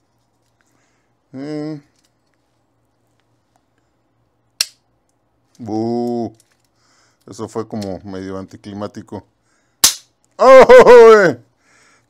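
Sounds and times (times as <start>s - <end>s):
cap gun crack: 4.6s - 4.8s, 9.8s - 10.2s
person exclaiming: 10.4s - 11.4s.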